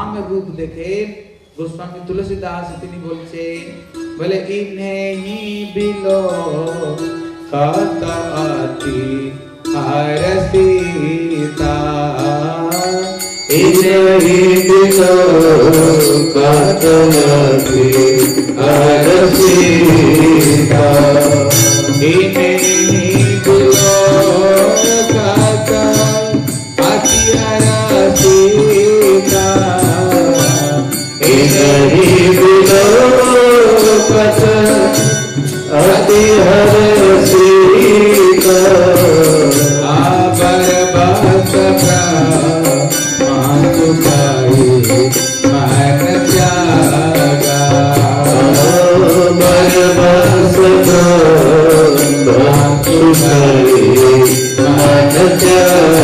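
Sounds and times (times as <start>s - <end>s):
devotional chanting music: 0.0s - 56.0s
sustained instrumental accompaniment: 3.0s - 56.0s
hand cymbals beat: 5.0s - 56.0s.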